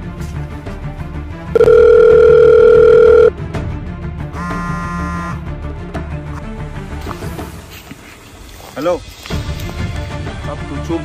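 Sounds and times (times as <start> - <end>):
background music: 0.0 - 11.0
long telephone beep: 1.6 - 3.3.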